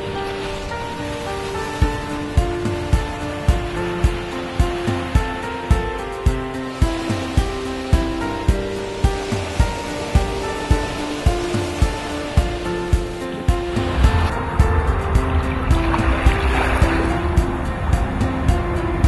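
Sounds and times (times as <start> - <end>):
background music with steady beat: 0.0 - 19.0
rushing noise: 0.0 - 19.0.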